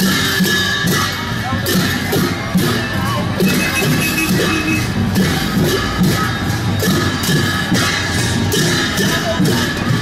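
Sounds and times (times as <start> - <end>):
hand cymbals clashing: 0.0 - 10.0.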